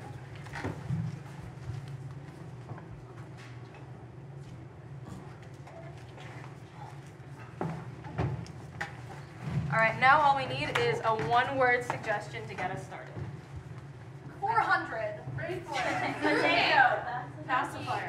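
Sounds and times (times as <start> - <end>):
steady low hum: 0.0 - 18.0
soft footsteps on stage: 4.3 - 14.4.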